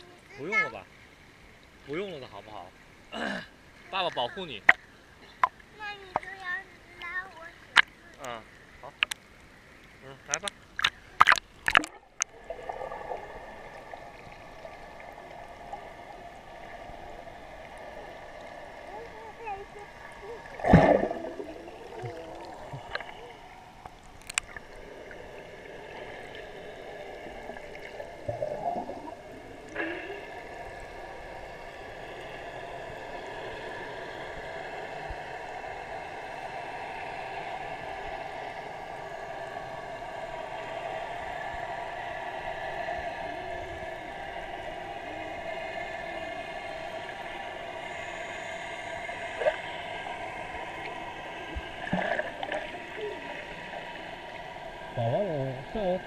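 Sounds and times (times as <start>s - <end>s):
muffled underwater wash: 0.0s - 56.0s
water splashing: 3.7s - 56.0s.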